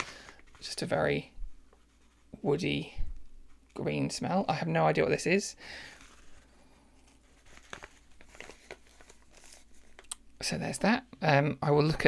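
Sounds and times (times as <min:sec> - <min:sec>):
paper bag crinkling: 0:05.8 - 0:10.1
soft crackles: 0:05.8 - 0:10.2.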